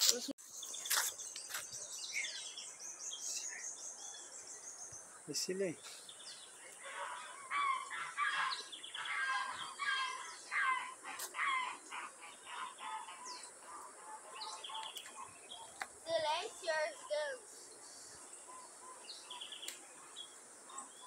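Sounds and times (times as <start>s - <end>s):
birds chirping: 0.0s - 21.0s.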